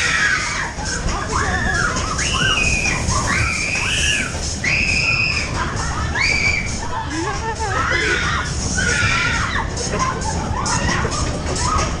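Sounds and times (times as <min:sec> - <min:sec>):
riders screaming: 0:00.0 - 0:06.8.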